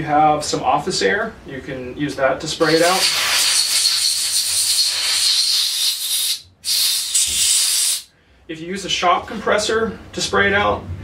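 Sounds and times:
compressed air hissing: 2.6 - 8.1.

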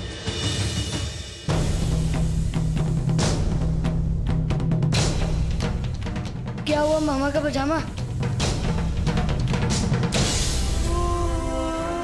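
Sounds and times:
drum hits: 0.0 - 11.5
dramatic score led by drums: 0.0 - 12.0.

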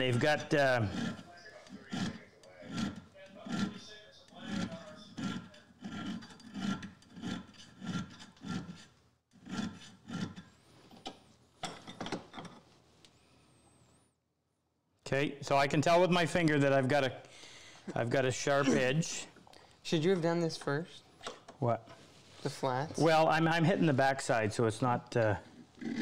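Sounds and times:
file stroking steel: 0.0 - 10.6.

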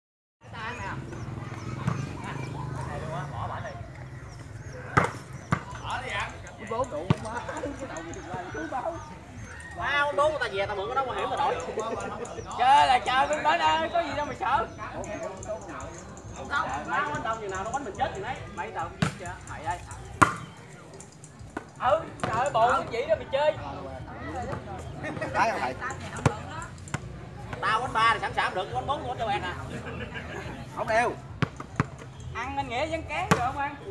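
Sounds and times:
people calling and chattering: 0.4 - 33.9
ball being struck: 4.9 - 5.8, 18.9 - 19.3, 20.2 - 20.6, 33.2 - 33.6
volleyball being struck: 18.9 - 19.3, 20.2 - 20.6.

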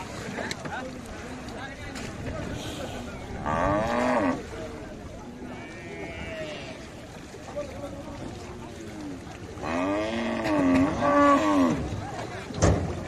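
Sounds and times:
cow mooing: 3.4 - 4.4, 9.6 - 11.8.

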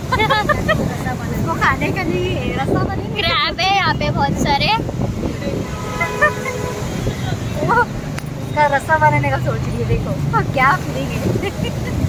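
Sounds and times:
low rumble of road traffic: 0.0 - 12.0
vehicle horn honk: 5.4 - 7.8.

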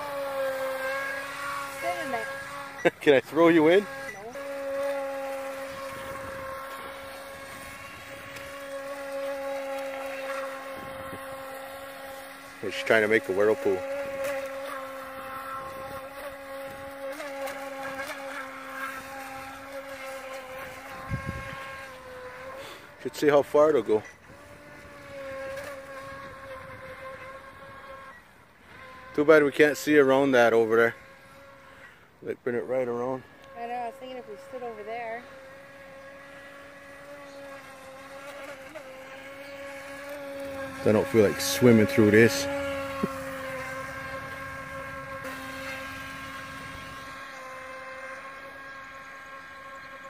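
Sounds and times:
electric motor high whine: 0.0 - 50.0.

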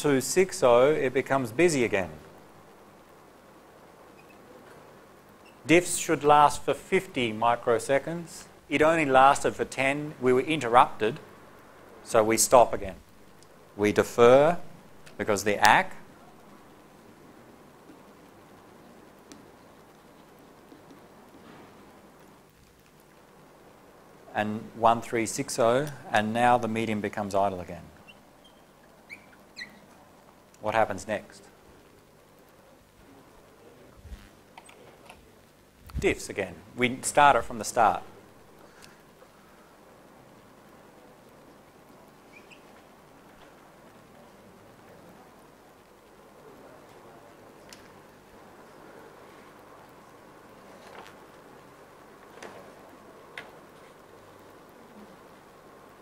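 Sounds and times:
faint steady hiss: 0.0 - 56.0
faint chirp: 4.1 - 4.8, 5.4 - 5.7, 28.0 - 30.0, 42.2 - 42.9
faint ticks: 38.6 - 39.7.

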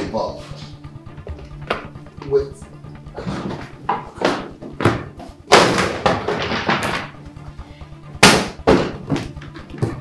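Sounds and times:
quiet background music: 0.0 - 10.0
sharp bangs: 8.1 - 9.1.

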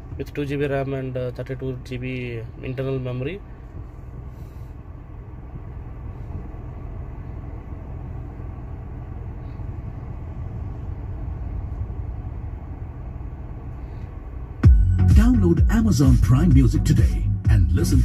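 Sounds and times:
car engine rumble from inside: 0.0 - 18.0.

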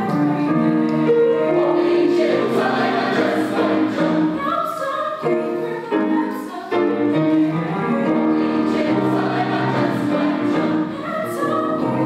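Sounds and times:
mixed choir singing: 1.0 - 12.0.

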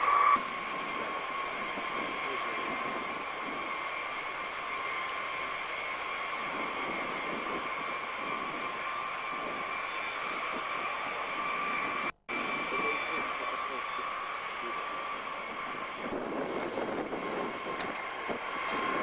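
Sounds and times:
jet engines whining: 0.0 - 19.0.

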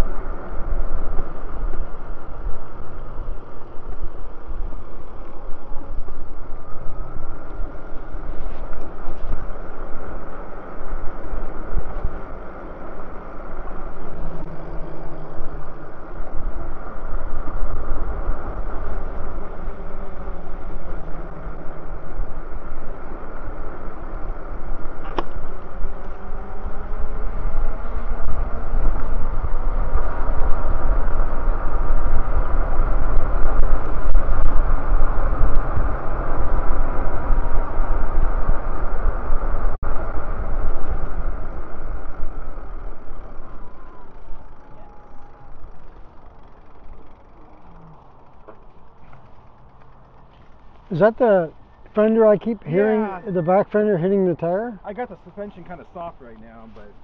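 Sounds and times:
motor whine: 0.0 - 50.9
wind rushing over microphone: 0.0 - 53.5
bike tyres on pavement: 0.0 - 57.0.

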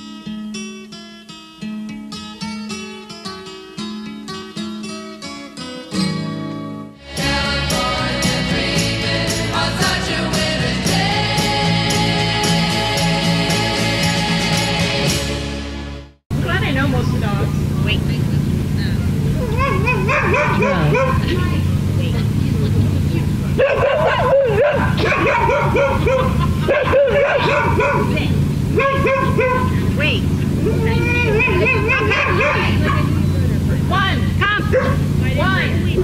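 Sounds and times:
steady low hum: 16.3 - 36.0
dogs yipping and barking: 19.2 - 21.4, 23.5 - 33.4, 34.7 - 35.2.

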